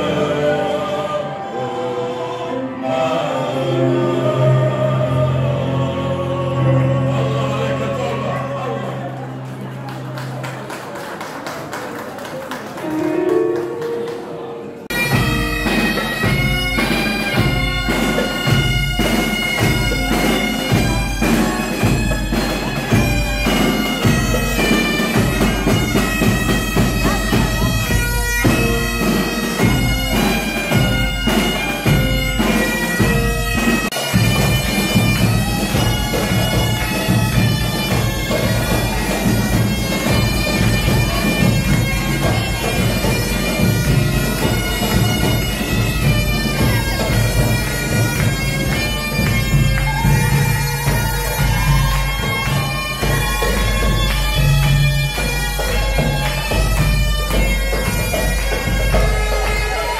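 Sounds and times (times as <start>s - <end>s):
bagpipe: 0.0s - 9.4s, 14.7s - 59.9s
saxophone and trumpet: 14.7s - 59.9s.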